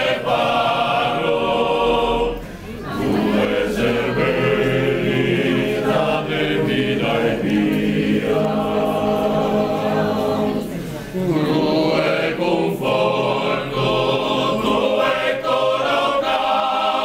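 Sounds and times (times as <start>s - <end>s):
men's choir singing in harmony: 0.0s - 17.0s.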